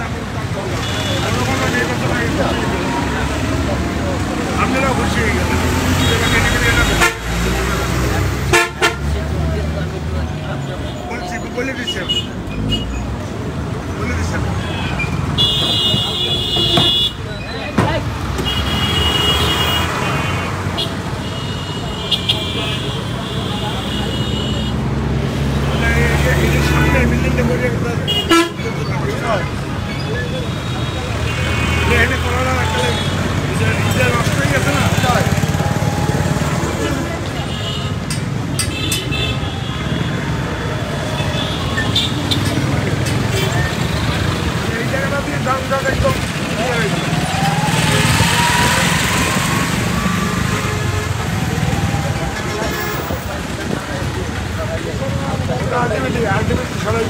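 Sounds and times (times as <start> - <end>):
people chattering: 0.0 - 57.0
vehicle engines running: 0.0 - 57.0
car horn toots: 8.5 - 9.1, 14.7 - 17.2.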